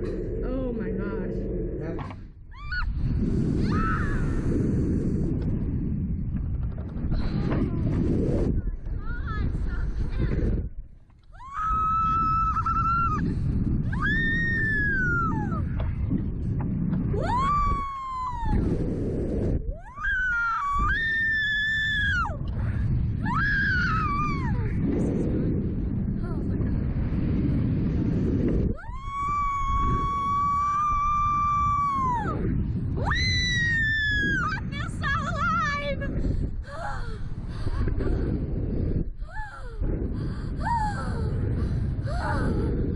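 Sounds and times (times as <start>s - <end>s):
wind on microphone: 0.0s - 42.9s.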